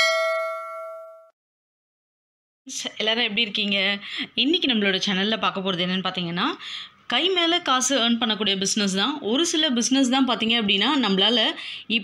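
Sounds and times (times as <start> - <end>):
notification bell ding: 0.0 - 1.3.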